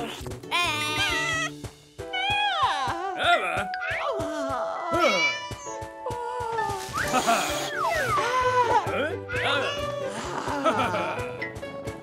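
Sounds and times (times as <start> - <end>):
cartoon background music: 0.0 - 12.0
high-pitched squeaky cries: 0.6 - 1.5.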